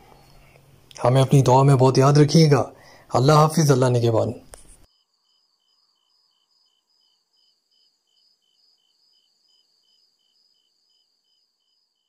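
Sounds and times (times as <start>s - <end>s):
crickets chirping: 4.8s - 12.0s.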